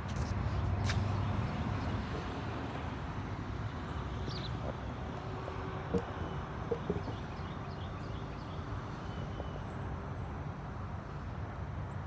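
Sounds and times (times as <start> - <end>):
low outdoor rumble: 0.0 - 10.3.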